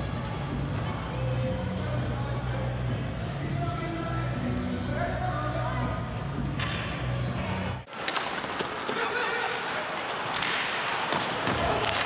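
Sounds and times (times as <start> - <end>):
sticks and puck clacking: 6.6 - 6.9, 7.9 - 12.0.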